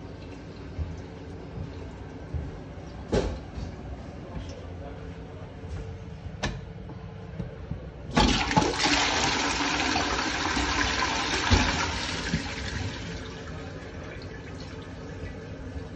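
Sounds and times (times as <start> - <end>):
toilet flushing: 8.1 - 15.9.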